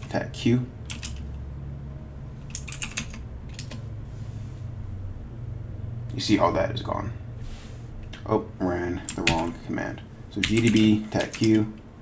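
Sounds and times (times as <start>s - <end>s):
steady low hum: 0.0s - 12.0s
keyboard keystrokes clicking: 0.9s - 1.3s, 2.5s - 3.8s, 10.4s - 11.6s.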